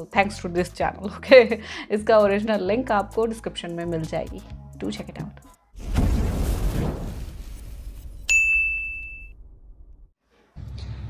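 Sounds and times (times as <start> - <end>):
bright ding: 8.3 - 9.4.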